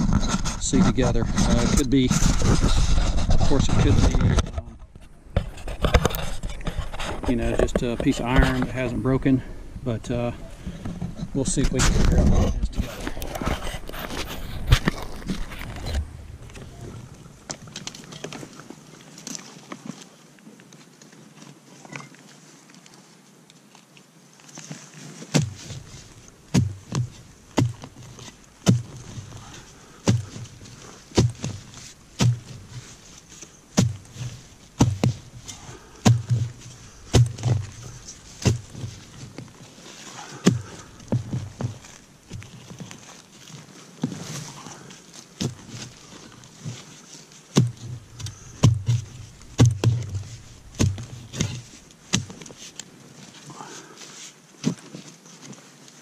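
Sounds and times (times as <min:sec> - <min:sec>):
digging tool chopping soil: 0:25.3 - 0:39.5, 0:40.2 - 0:42.6, 0:47.5 - 0:52.9.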